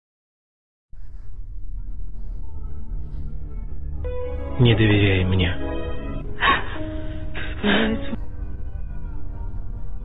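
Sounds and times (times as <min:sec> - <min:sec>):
slow background music: 0:01.0 - 0:10.0
woman sobbing gasps: 0:06.4 - 0:08.2.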